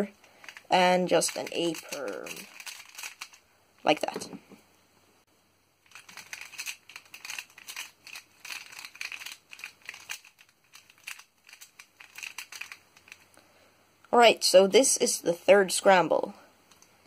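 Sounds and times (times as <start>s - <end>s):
plastic puzzle clicking: 0.3s - 3.4s, 5.9s - 13.3s.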